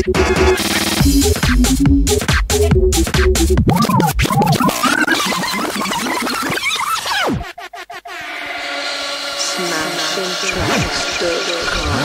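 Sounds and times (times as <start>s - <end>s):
house music: 0.0s - 8.4s.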